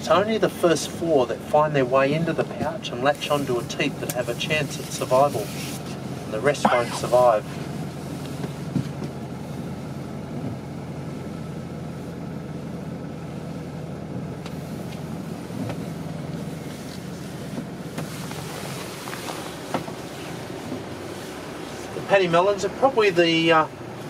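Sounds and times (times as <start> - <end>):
bus engine humming: 0.0 - 24.0.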